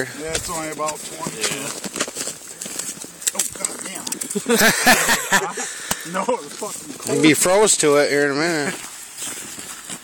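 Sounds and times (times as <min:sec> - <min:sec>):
men laughing and talking: 0:03.4 - 0:08.8.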